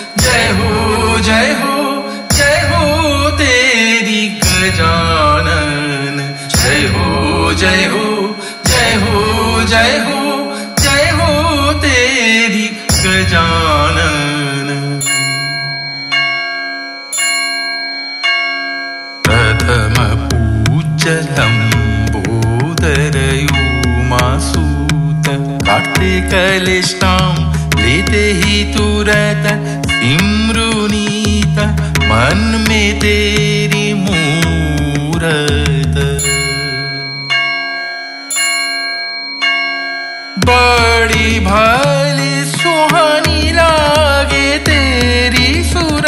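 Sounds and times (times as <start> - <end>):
bell ringing: 0.0 - 46.0
devotional song: 0.0 - 46.0.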